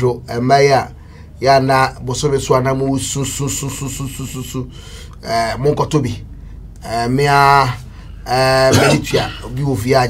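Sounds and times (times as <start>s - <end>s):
breathy hiss: 4.6s - 5.2s
man's voice in short pulses: 8.6s - 9.5s.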